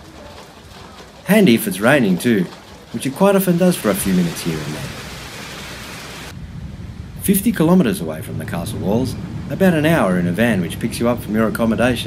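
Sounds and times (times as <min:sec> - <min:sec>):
rain falling: 0:00.0 - 0:12.0
faint low rumble: 0:06.3 - 0:12.0.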